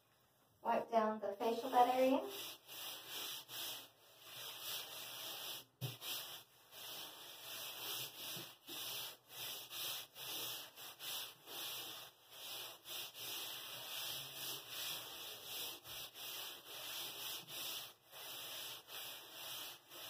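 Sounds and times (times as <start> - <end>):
wipe rubbing across bed: 1.5 - 20.0.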